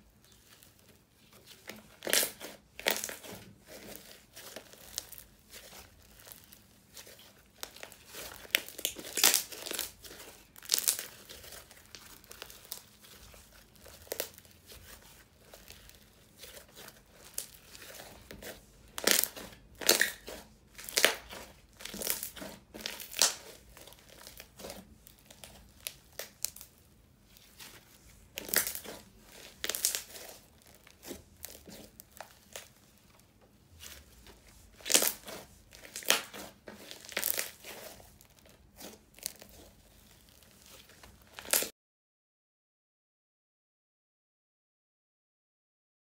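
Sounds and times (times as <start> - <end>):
crunchy slime crackling: 0.0 - 41.7.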